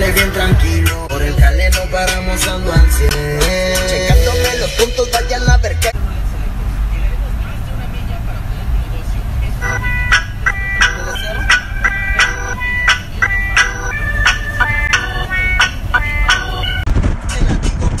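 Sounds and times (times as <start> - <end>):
car cabin rumble while driving: 4.0 - 18.0
tune of short high notes: 9.6 - 16.9.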